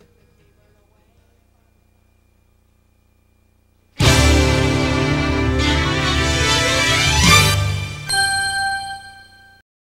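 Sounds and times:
bell-like ding: 8.0 - 9.6.

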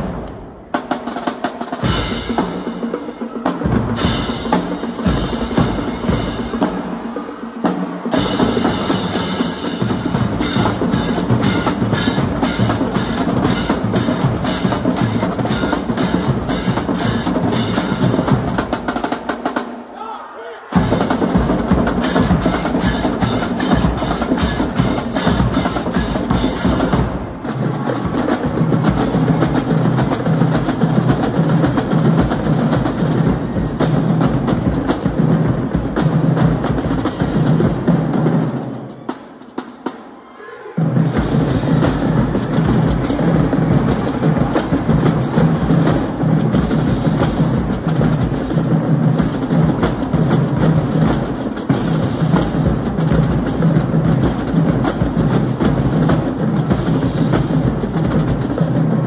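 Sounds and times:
snare drums: 0.0 - 59.0
bass drums: 8.1 - 19.1, 20.8 - 38.2.

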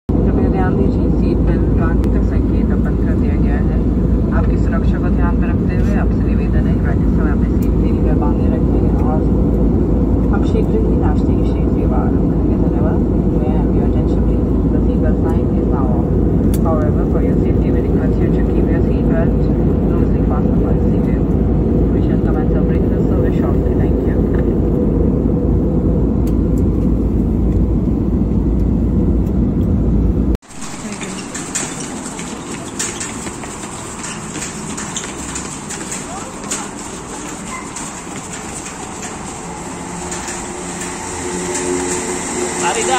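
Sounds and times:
jet engines and rushing air: 0.1 - 42.9
indistinct voices: 0.2 - 24.7, 30.5 - 42.9.

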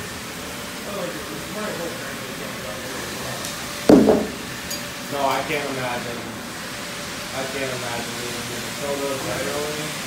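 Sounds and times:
sharp knock: 3.9 - 4.5.

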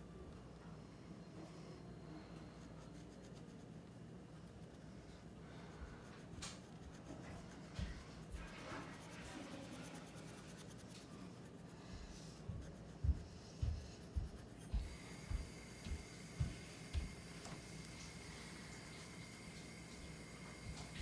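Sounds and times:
pencil drawing on paper: 1.2 - 21.0.

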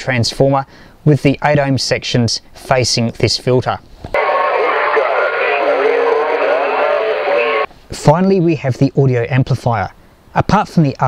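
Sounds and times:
shortwave radio voice warbling: 4.2 - 7.7.

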